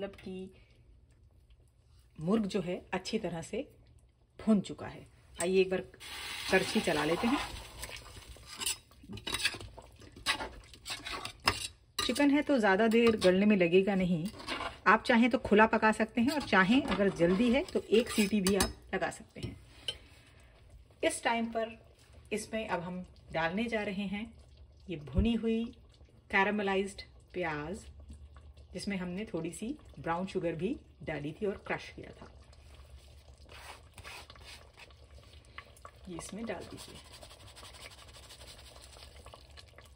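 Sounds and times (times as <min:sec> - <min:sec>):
gravy simmering and bubbling: 0:00.0 - 0:39.9
metal spoon scraping in gravy: 0:06.6 - 0:13.4, 0:14.2 - 0:14.8, 0:16.2 - 0:18.8, 0:36.6 - 0:39.2.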